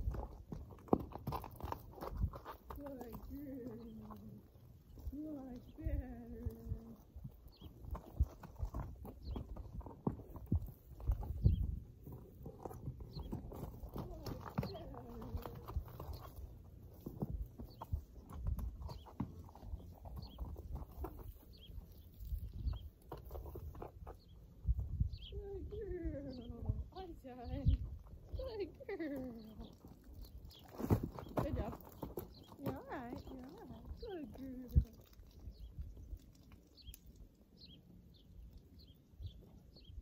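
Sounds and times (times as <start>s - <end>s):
horse hooves on dirt: 0.0s - 40.0s.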